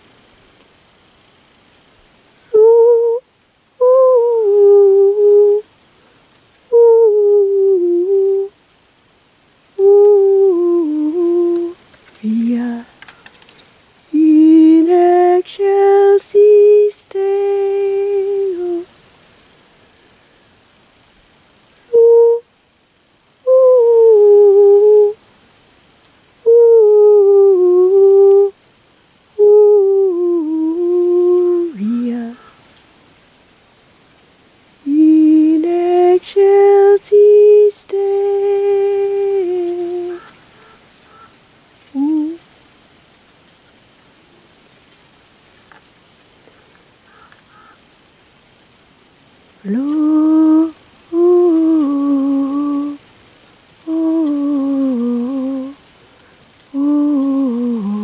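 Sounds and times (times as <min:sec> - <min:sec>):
woman singing wordlessly: 0:02.4 - 0:05.7, 0:06.6 - 0:08.6, 0:09.7 - 0:13.0, 0:14.0 - 0:19.0, 0:21.8 - 0:22.5, 0:23.4 - 0:25.2, 0:26.4 - 0:28.6, 0:29.3 - 0:32.6, 0:34.8 - 0:40.4, 0:41.9 - 0:42.5, 0:49.6 - 0:53.1, 0:53.8 - 0:55.9, 0:56.7 - 0:58.0.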